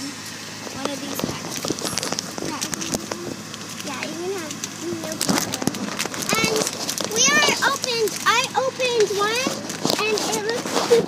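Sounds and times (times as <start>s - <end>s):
plastic packets crinkling: 1.1s - 8.4s
girl's voice: 2.4s - 11.0s.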